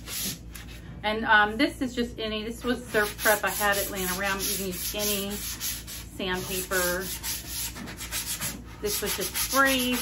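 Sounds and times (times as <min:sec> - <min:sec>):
sanding pad rubbing wood: 0:02.9 - 0:10.0.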